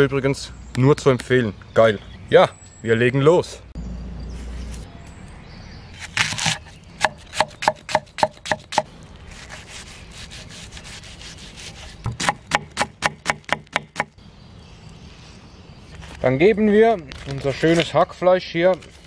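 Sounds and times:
knife chopping on wooden board: 6.1s - 8.9s, 12.0s - 14.1s
knife scrape: 9.3s - 12.1s.

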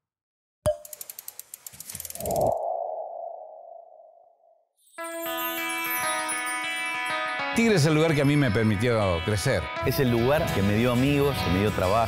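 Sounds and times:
quick run of ticks: 0.8s - 2.6s.

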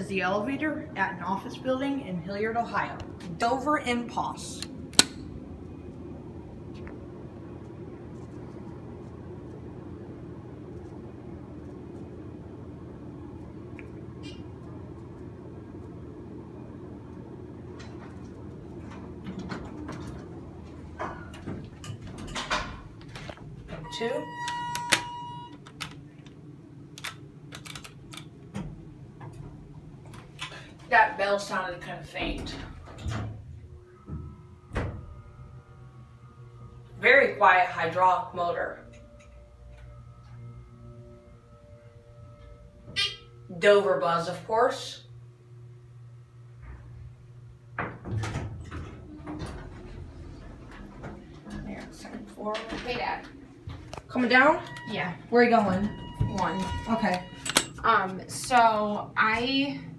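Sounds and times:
steady low hum: 0.0s - 59.9s
elevator doors opening: 17.3s - 26.4s, 27.0s - 44.8s, 46.5s - 59.7s.

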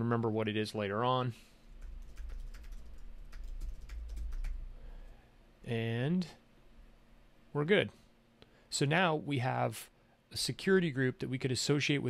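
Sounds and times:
computer keyboard typing: 1.8s - 4.6s.

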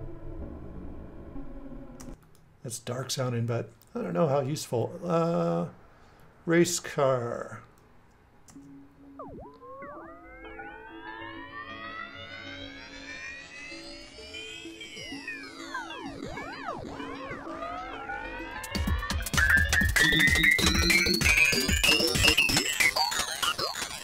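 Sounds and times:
pitch-shifted synth melody: 8.6s - 24.0s
pitch-shifted drum loop: 9.2s - 24.0s.

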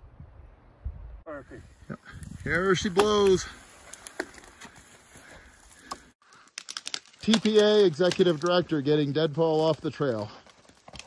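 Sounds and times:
sharp wood cracks: 2.2s - 11.0s.

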